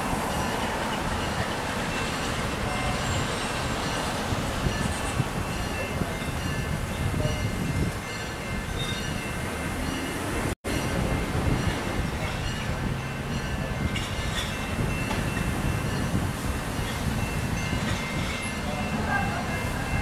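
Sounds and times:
diesel locomotive rumble: 0:00.0 - 0:20.0.

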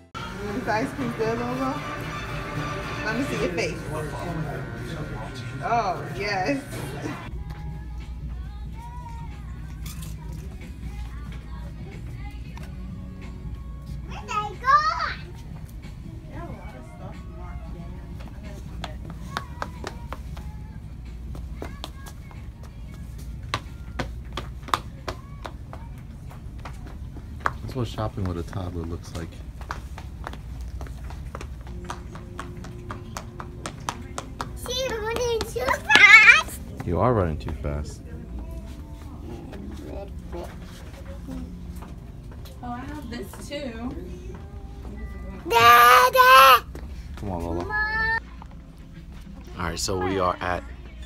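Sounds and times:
low hum of store noise: 0:00.0 - 0:51.0
soft background music: 0:00.0 - 0:51.0
quick footsteps on hard floor: 0:21.3 - 0:37.6
toddler squealing: 0:35.9 - 0:36.5, 0:45.5 - 0:46.6.

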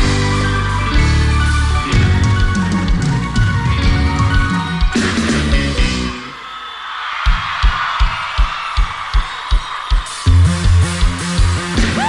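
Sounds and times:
kick drum beating steadily: 0:07.2 - 0:12.0.

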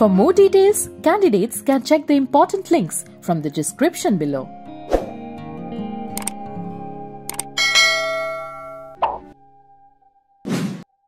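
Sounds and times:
background music: 0:00.0 - 0:10.2
quick clicks: 0:06.2 - 0:06.4, 0:07.3 - 0:07.5
bright ringing chime: 0:07.6 - 0:09.0.

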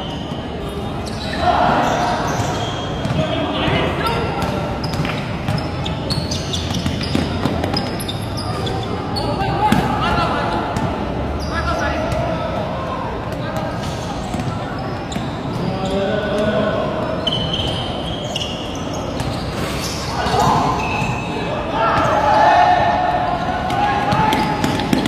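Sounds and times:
players shouting: 0:00.4 - 0:04.8, 0:20.0 - 0:25.0
basketball bouncing on court: 0:02.3 - 0:08.2, 0:23.6 - 0:25.0
players' footwork: 0:23.4 - 0:25.0.

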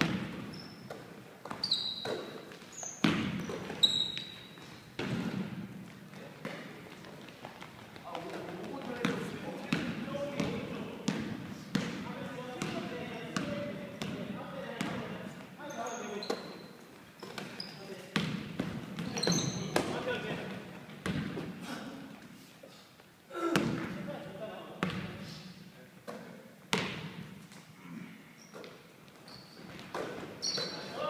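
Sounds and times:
basketball bouncing on wooden floor: 0:00.0 - 0:02.3, 0:03.0 - 0:03.9, 0:05.0 - 0:05.6, 0:18.2 - 0:19.9, 0:26.7 - 0:27.2
sneaker squeaks: 0:00.0 - 0:05.4, 0:15.6 - 0:20.0, 0:28.3 - 0:31.0.

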